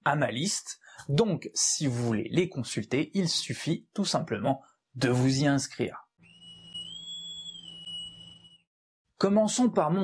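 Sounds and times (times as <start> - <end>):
high whistle-like tone: 6.2 - 8.7.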